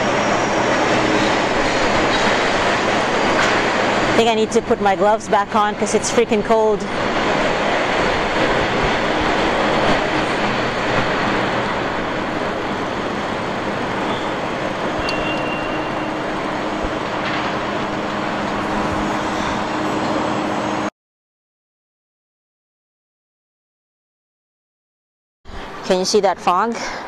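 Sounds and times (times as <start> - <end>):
wind noise on microphone: 6.9 - 20.3.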